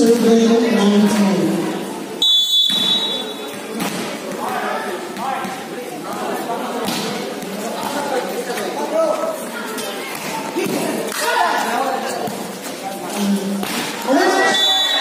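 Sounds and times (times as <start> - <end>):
people talking and calling out: 0.0 - 15.0
referee's whistle blast: 2.2 - 3.4, 14.4 - 15.0.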